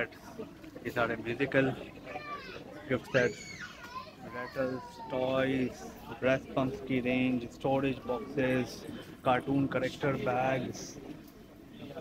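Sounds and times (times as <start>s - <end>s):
voices in background: 0.0s - 12.0s.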